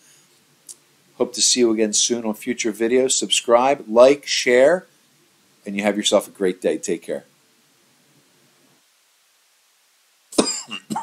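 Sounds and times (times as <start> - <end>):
man coughing: 10.3 - 11.0.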